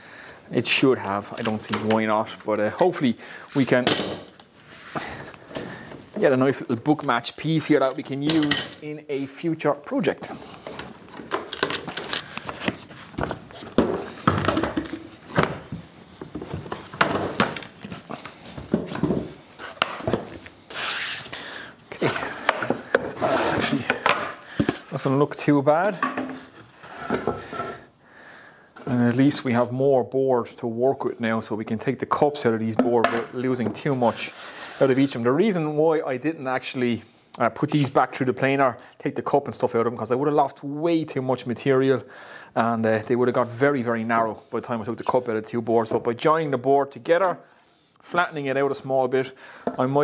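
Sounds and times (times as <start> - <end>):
metal clamps handling noise: 7.9 - 8.9.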